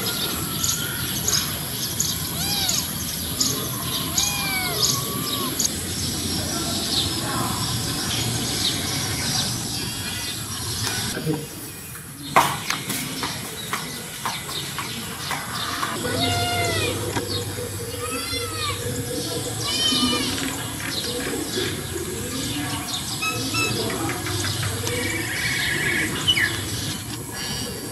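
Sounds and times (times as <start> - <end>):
faint outdoor background: 0.0 - 27.9
small birds chirping: 0.0 - 27.9.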